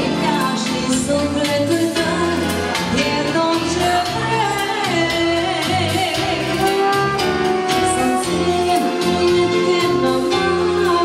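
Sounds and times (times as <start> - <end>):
keyboard bass: 0.0 - 11.0
live band music with steady beat: 0.0 - 11.0.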